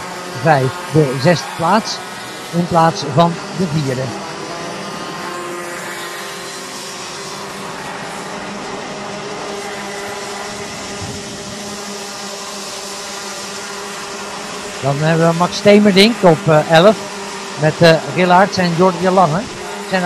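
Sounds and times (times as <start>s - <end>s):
kart engines buzzing: 0.0s - 20.0s.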